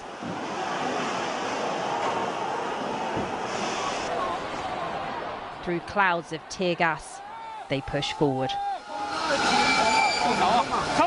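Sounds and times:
dense steady rushing noise: 0.0s - 11.0s.

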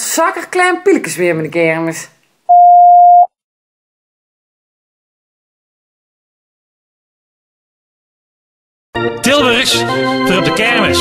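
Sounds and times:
electronic beep: 2.5s - 3.3s.

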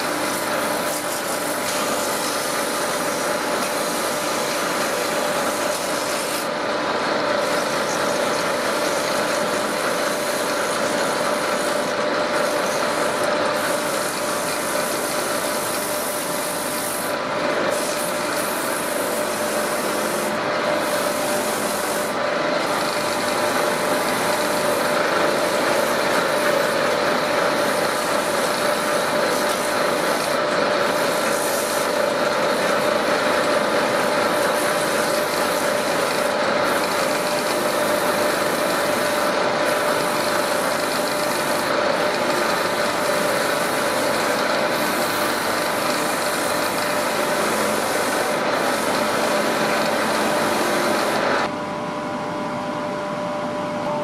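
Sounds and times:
sandpaper rubbing hiss: 0.0s - 6.5s, 7.4s - 51.4s
wood lathe humming: 0.0s - 51.5s.

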